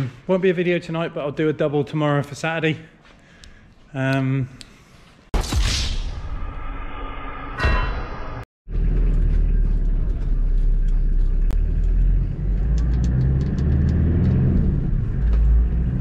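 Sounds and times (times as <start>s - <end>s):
engine and road rumble: 8.7s - 16.0s
engine hum: 8.7s - 16.0s.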